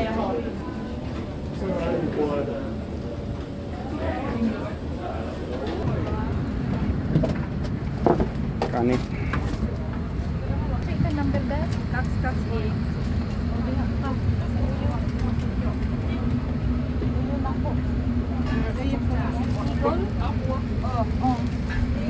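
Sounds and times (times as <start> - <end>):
aircraft cabin low hum: 0.0 - 22.0
faint passenger chatter: 0.0 - 22.0.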